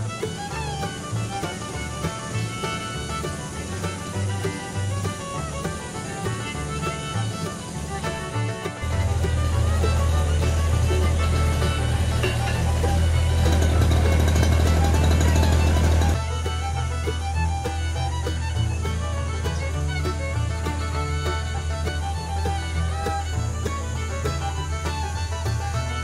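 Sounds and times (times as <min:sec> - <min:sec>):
excavator diesel engine droning: 0:00.0 - 0:26.0
fiddle music: 0:00.0 - 0:26.0.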